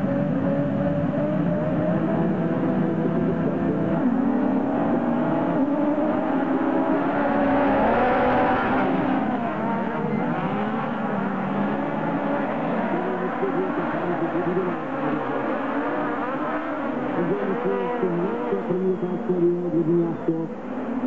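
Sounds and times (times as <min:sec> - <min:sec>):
buggy engines revving: 0:00.0 - 0:21.0.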